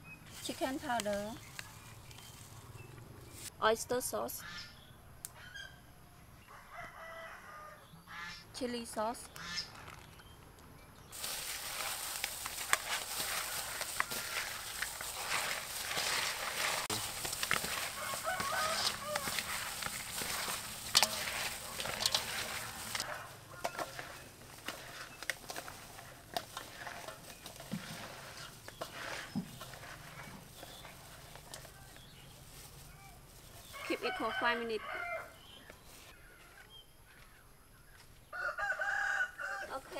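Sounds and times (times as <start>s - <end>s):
wet squelching of mixing shrimp: 11.2s - 34.2s
chickens clucking: 12.1s - 32.1s.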